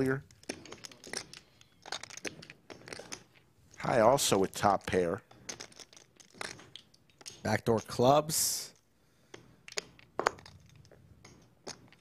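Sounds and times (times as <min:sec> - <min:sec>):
poker chips clicking: 0:00.3 - 0:03.5, 0:04.9 - 0:08.0, 0:08.7 - 0:12.0.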